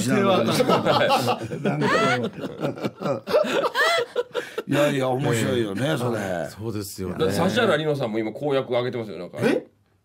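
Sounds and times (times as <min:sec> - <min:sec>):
people talking and chuckling: 0:00.0 - 0:05.0.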